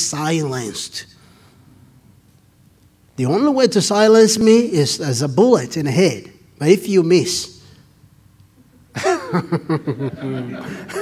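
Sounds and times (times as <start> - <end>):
man chuckling: 8.6 - 11.0.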